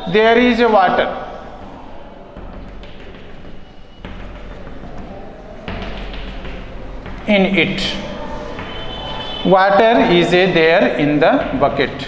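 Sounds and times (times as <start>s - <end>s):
chalk scratching on blackboard: 2.4s - 10.6s.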